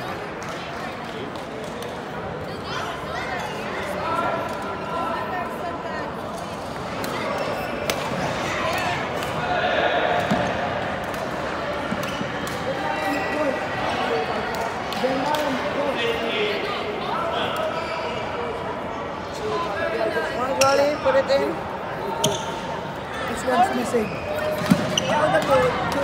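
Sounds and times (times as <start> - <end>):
murmur of spectators chatting: 0.0 - 26.0.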